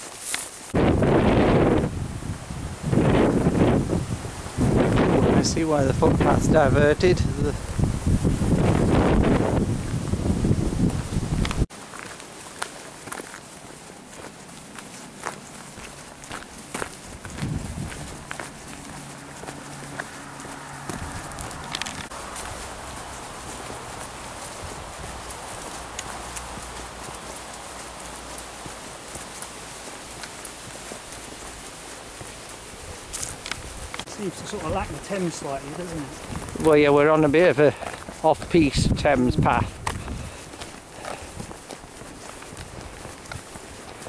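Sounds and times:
footsteps on a path: 0:00.0 - 0:44.0
wind buffeting microphone: 0:00.7 - 0:11.7, 0:16.2 - 0:44.0.

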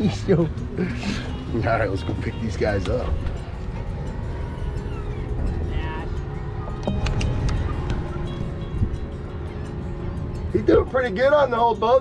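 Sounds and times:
boat motor running: 0:00.0 - 0:11.7
background music: 0:00.0 - 0:12.0
wind on microphone: 0:03.0 - 0:10.0.

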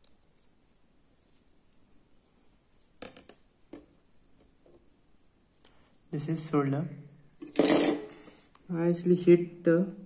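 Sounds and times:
man speaking: 0:06.1 - 0:07.1, 0:08.7 - 0:10.0.

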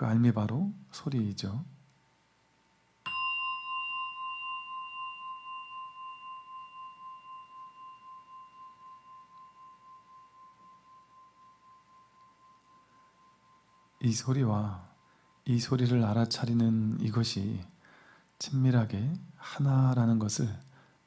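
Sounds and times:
meditation bell ringing: 0:03.0 - 0:20.0.

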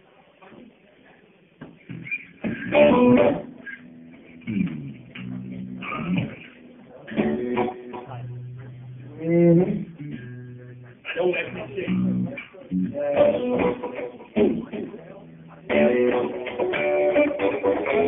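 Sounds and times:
electric guitar through amplifier: 0:01.5 - 0:18.0
bass guitar long low notes: 0:01.9 - 0:16.1.

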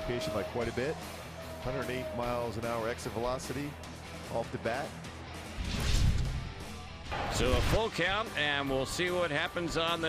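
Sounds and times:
background music: 0:00.0 - 0:10.0
whoosh with deep boom: 0:05.6 - 0:07.8.

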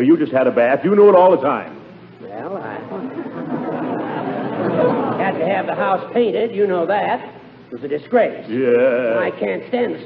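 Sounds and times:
studio audience laughing: 0:02.9 - 0:06.0.

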